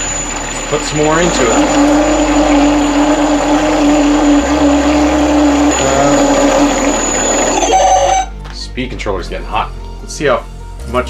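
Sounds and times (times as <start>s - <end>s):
high-revving motor whine: 0.0s - 8.3s
water churning: 0.0s - 8.3s.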